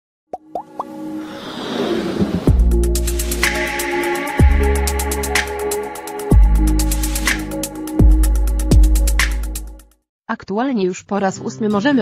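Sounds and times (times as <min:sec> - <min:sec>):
quick rising pops: 0:00.6 - 0:02.8
whoosh: 0:01.2 - 0:03.5.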